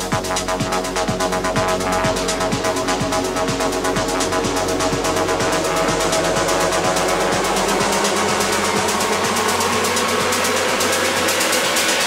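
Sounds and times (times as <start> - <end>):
deep bass: 0.0 - 12.0
rising sweep: 0.0 - 12.0
trance music build-up: 0.0 - 12.0.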